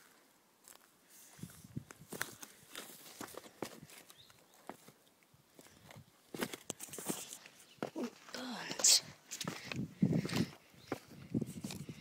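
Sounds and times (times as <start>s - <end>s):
footsteps on stone rubble: 0.6s - 5.0s, 5.6s - 12.0s.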